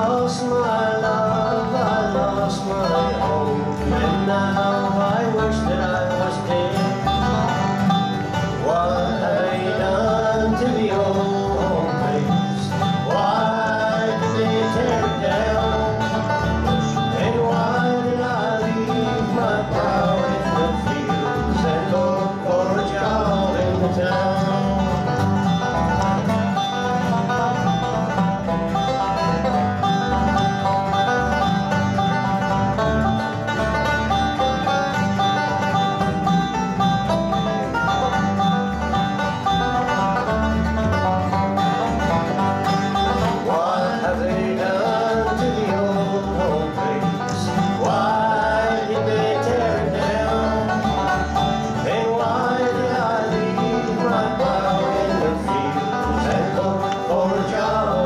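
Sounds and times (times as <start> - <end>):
lead vocal singing: 0.0 - 7.2, 8.5 - 25.3, 43.2 - 58.0
acoustic guitars: 0.0 - 58.0
banjo: 0.0 - 58.0
upright bass: 0.0 - 58.0
harmony singing voice: 8.5 - 25.3, 43.2 - 58.0.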